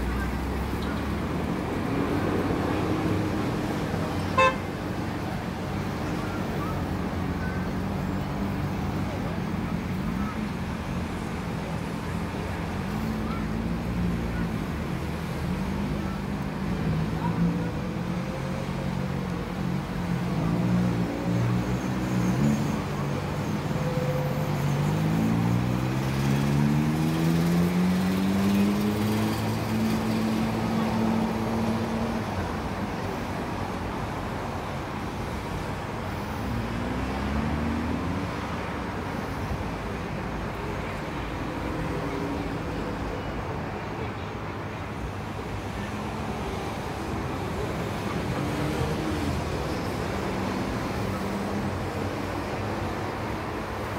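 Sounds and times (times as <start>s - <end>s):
road traffic: 0.0s - 53.9s.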